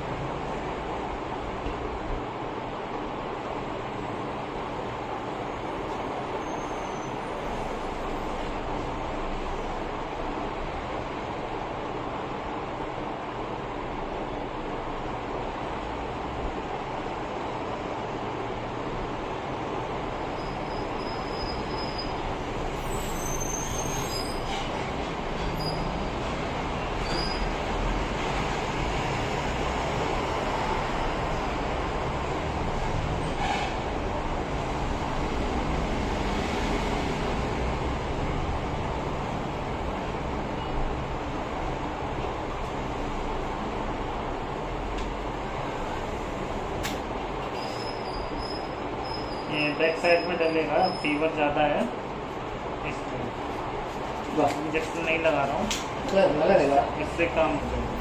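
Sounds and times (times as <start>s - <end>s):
steady rushing noise: 0.0s - 6.4s, 24.5s - 47.5s, 48.3s - 58.0s.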